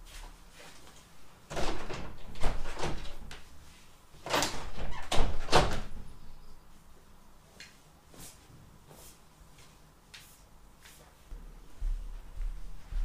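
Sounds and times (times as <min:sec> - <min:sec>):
door opening and shutting: 0:01.5 - 0:03.3, 0:04.2 - 0:06.2.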